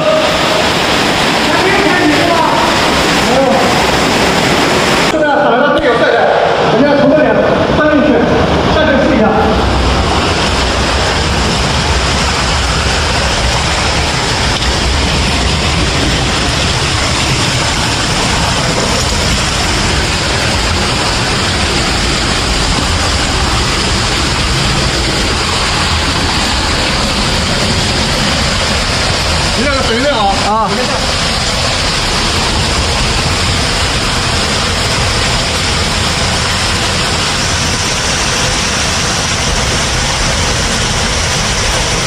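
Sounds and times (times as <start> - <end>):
water rushing in a cave: 0.0 - 42.0.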